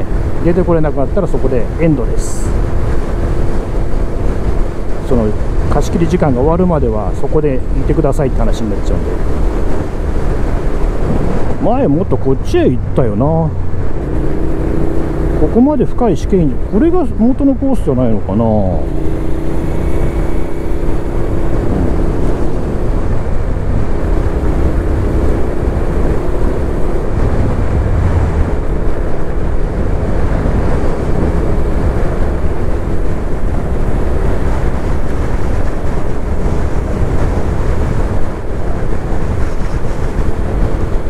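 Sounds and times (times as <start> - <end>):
wind rushing over microphone: 0.0 - 41.0
motorcycle engine running: 12.7 - 41.0.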